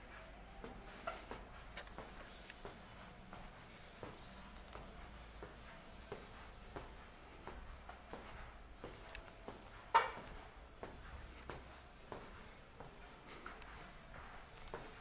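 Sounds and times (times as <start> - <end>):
footsteps on tiled floor: 0.0 - 15.0.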